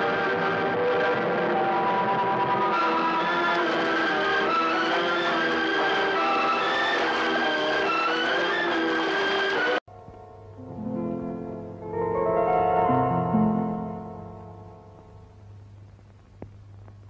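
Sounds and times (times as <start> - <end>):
instrumental film music: 0.0 - 15.7
quieter music: 0.0 - 17.0.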